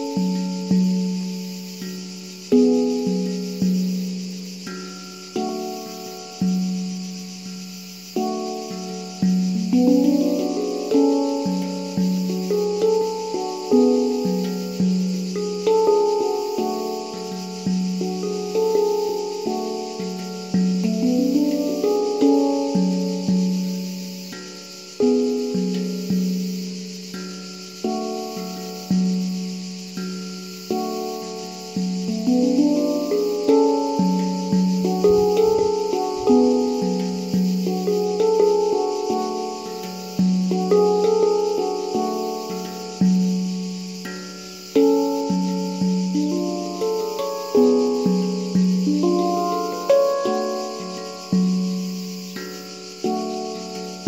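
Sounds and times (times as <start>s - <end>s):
handpan melody: 0.0s - 54.0s
high insect drone: 0.0s - 54.0s.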